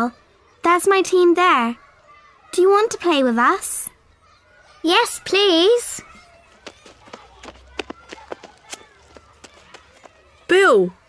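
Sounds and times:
faint voices: 3.9 - 11.0
running footsteps: 6.0 - 10.5.

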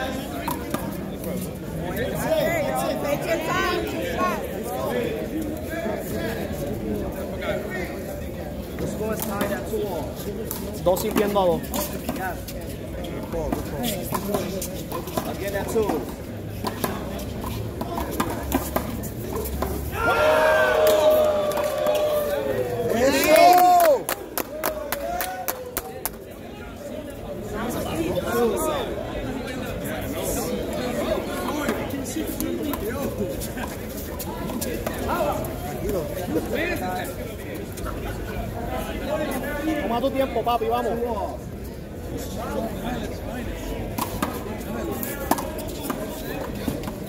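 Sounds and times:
people talking and chattering: 0.0 - 47.0
loud drawn-out shouts: 19.9 - 24.1.

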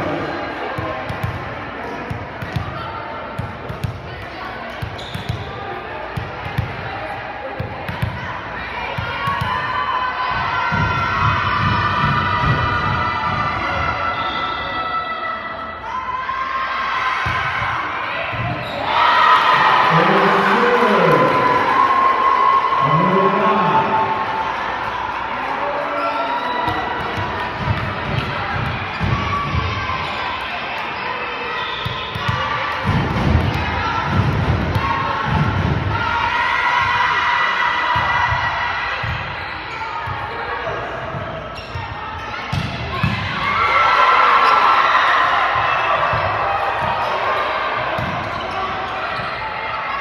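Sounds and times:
spectators' voices: 0.0 - 50.0
crowd cheering and shouting: 6.0 - 50.0.

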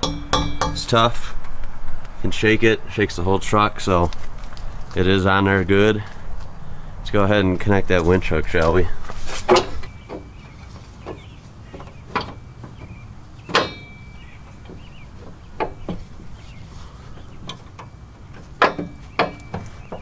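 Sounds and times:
short metallic ring: 0.0 - 0.9, 13.6 - 14.3
metal hook clinking and knocking: 13.5 - 14.8.

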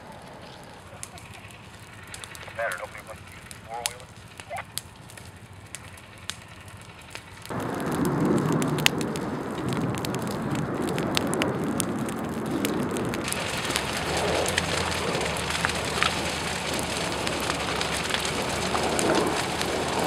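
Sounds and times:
brush fire crackling and popping: 0.0 - 20.0
rush of burning: 0.0 - 20.0.

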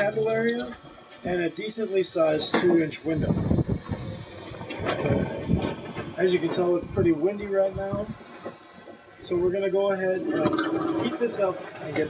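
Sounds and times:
wind buffeting microphone: 3.0 - 8.3.

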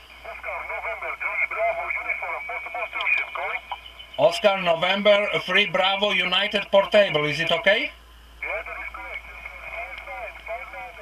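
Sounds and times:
narrow-band radio speech: 0.2 - 11.0
steady high tone: 1.3 - 6.0.

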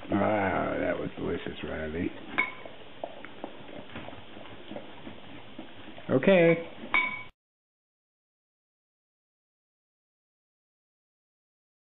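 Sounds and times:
metal clink: 6.9 - 7.3.

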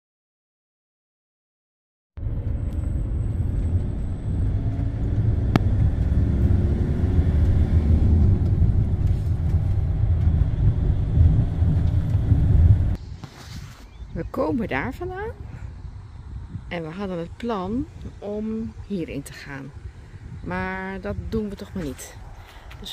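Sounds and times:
vehicle engine and road rumble: 2.2 - 22.9.

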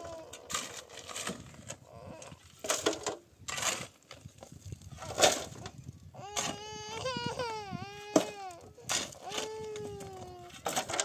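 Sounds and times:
toddler crying and whining: 0.0 - 0.5, 1.8 - 2.4, 6.1 - 11.0.

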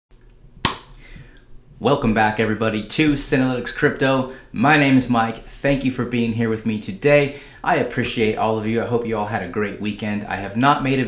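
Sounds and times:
sharp snap: 0.6 - 1.0
man speaking: 1.8 - 11.0.

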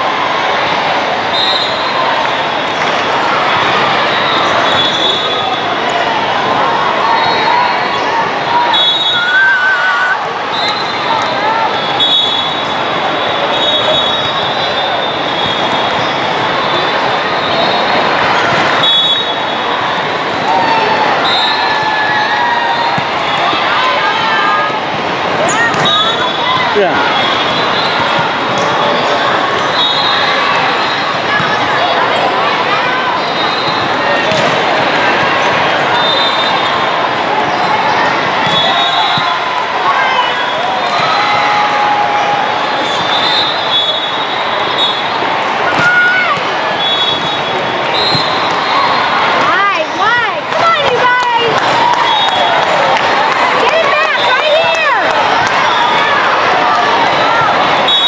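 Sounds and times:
many voices echoing: 0.0 - 58.0
volleyball hits: 18.2 - 24.1, 24.9 - 29.7, 33.7 - 36.7, 38.0 - 39.4, 45.6 - 55.8.

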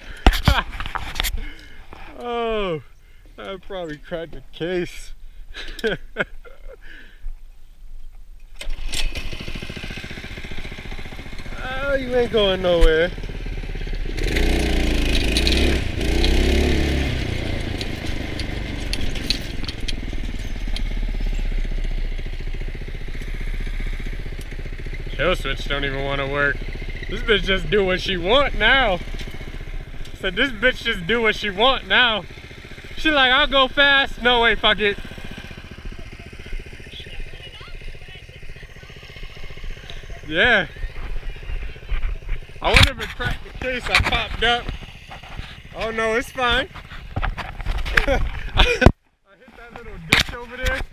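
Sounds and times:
kart frame rattling: 8.4 - 50.9
go-kart engine revving: 8.6 - 48.9, 49.5 - 50.9.

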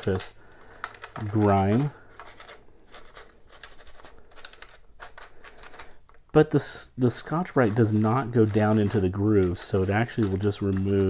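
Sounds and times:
scouring pad scrubbing plastic: 7.1 - 11.0.

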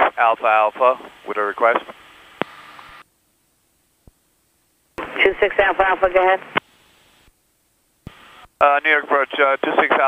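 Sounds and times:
radio intercom hiss: 0.0 - 3.0, 5.0 - 6.6, 8.1 - 10.0.

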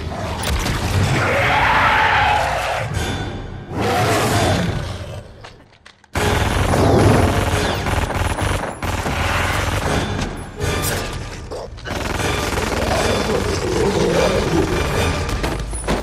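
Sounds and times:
film score: 0.0 - 16.0
creature snarling roar: 12.8 - 14.9.

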